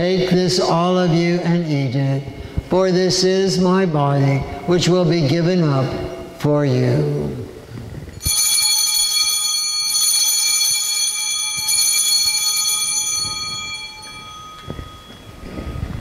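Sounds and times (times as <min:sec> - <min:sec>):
altar bell ringing: 0:08.2 - 0:16.0.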